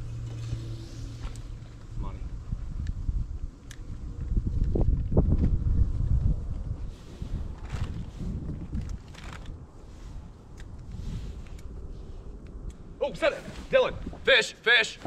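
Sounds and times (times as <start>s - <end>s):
wind buffeting microphone: 0.0s - 14.4s
short rustles: 6.8s - 12.4s.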